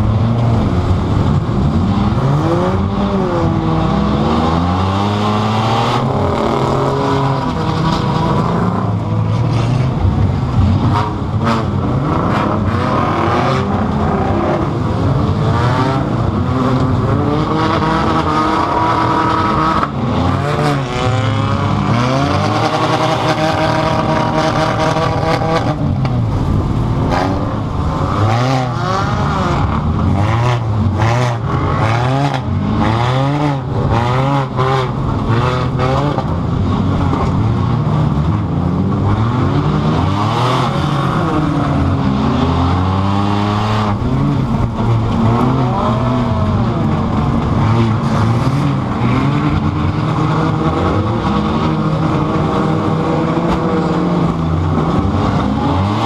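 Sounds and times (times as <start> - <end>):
other race car engines: 0.0 - 56.0
race car engine revving: 0.0 - 56.0.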